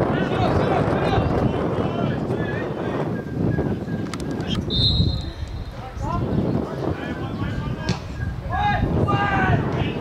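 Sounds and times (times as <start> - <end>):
wind buffeting microphone: 0.0 - 10.0
referee's whistle: 4.5 - 5.8.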